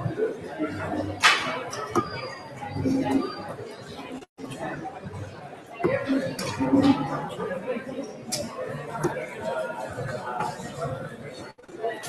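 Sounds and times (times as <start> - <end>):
people chattering in a hall: 0.0 - 12.0.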